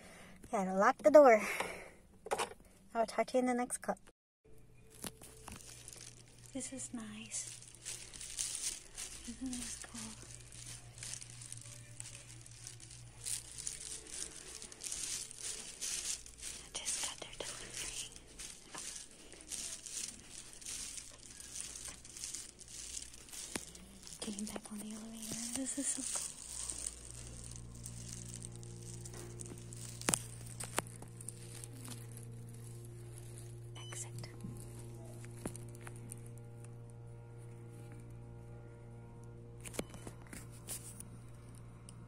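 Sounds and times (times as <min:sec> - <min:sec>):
low steady hum: 0:00.0 - 0:42.0.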